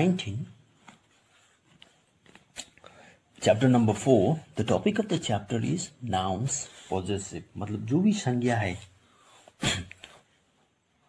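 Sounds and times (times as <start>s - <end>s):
soft clicks and rustles of book page: 0.6s - 4.1s, 8.6s - 10.6s.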